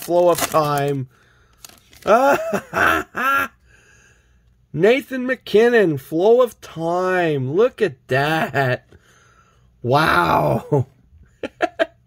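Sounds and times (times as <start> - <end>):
man laughing: 2.0 - 3.6, 8.2 - 8.9, 10.3 - 12.0.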